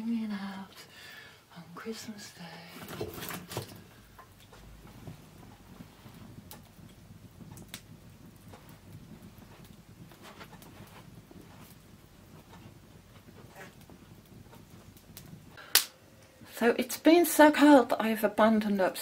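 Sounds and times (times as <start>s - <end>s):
wood fire crackling and popping: 0.6s - 19.0s.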